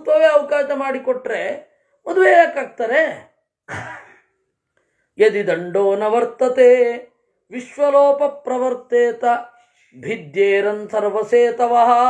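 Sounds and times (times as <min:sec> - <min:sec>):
man speaking: 0:00.0 - 0:03.4.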